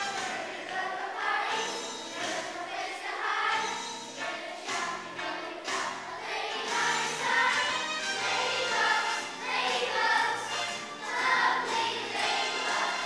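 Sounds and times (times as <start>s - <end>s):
children's choir singing: 0.0s - 13.0s
instrumental accompaniment: 0.0s - 13.0s.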